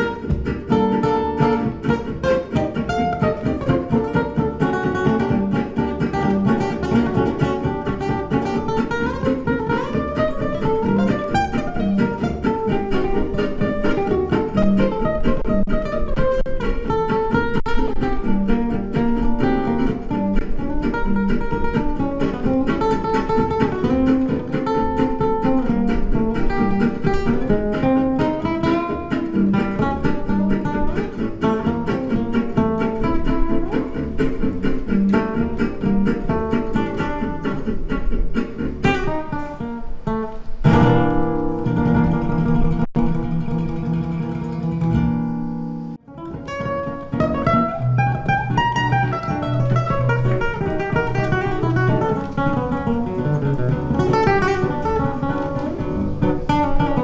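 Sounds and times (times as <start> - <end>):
nylon-string guitar playing gypsy swing: 0.0 - 57.0.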